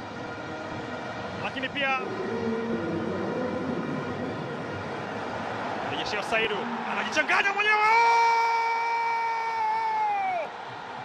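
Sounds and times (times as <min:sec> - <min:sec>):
commentator shouting: 0:06.7 - 0:10.5.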